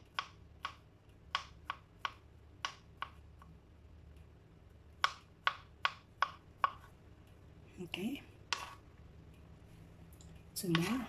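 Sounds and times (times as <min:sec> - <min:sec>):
knife chopping on plastic board: 0:00.0 - 0:03.2, 0:05.0 - 0:07.0, 0:08.5 - 0:08.8.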